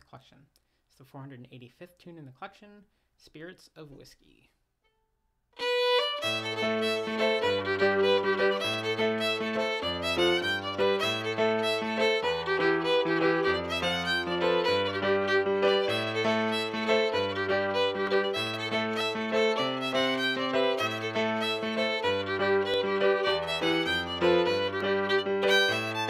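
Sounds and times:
fiddle playing fast tune: 5.6s - 26.0s
piano chords: 5.7s - 26.0s.

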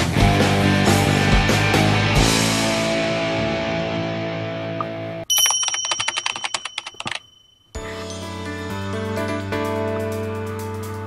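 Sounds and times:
rock music: 0.0s - 4.8s
rapid keyboard typing: 5.3s - 7.4s.

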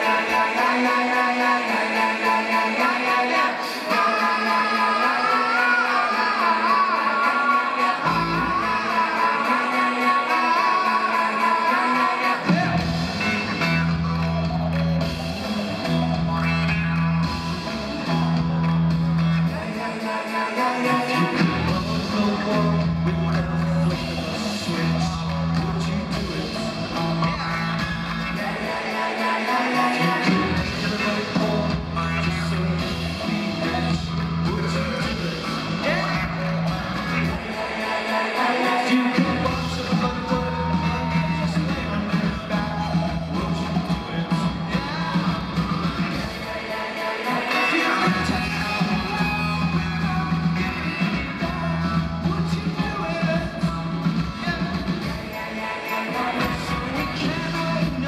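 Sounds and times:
person singing: 0.0s - 58.0s
rock guitar: 0.0s - 58.0s
repeating bass line: 8.0s - 9.8s, 12.3s - 20.0s, 20.9s - 58.0s.

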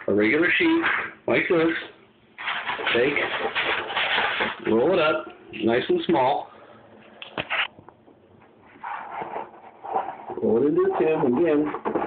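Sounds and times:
poster board rustling: 0.3s - 5.8s, 7.2s - 7.8s, 8.4s - 12.0s.

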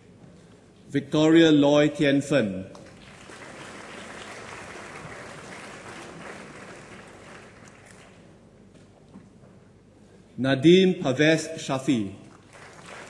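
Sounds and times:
audience applauding: 2.8s - 8.4s, 12.3s - 13.0s.

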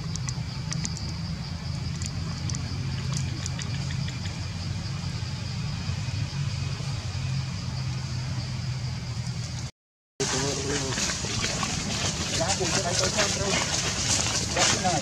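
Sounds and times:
low engine-like hum: 0.0s - 15.0s.

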